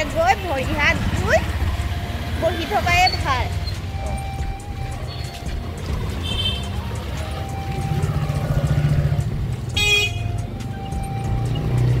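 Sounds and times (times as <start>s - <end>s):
background music: 0.0s - 12.0s
road vehicles rumbling: 0.0s - 12.0s
car horn honk: 6.2s - 6.8s, 9.8s - 10.3s.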